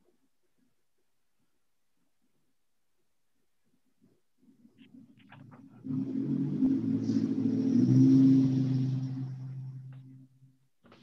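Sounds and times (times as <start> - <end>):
low rumbling hum: 5.4 - 10.8.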